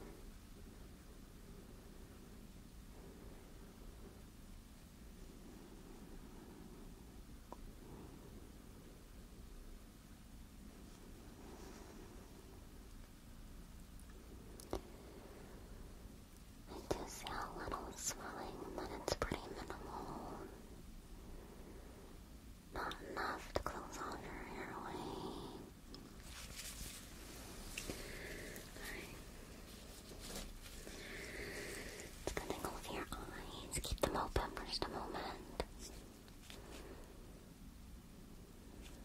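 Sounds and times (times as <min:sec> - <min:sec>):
person whispering: 0:16.7 - 0:20.6, 0:22.8 - 0:25.8, 0:27.8 - 0:36.1.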